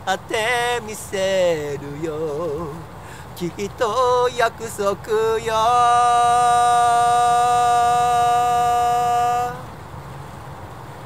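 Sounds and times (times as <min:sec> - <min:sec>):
man singing long note: 0:00.0 - 0:02.8, 0:03.4 - 0:09.7
outdoor background noise: 0:00.0 - 0:11.0.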